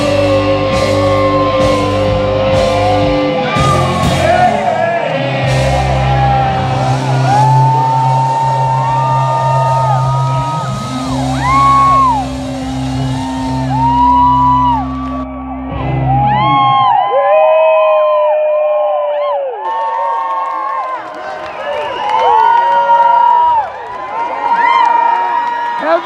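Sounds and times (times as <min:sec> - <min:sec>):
rock band holding a chord: 0:00.0 - 0:16.4
audience whooping and shouting: 0:00.0 - 0:26.0.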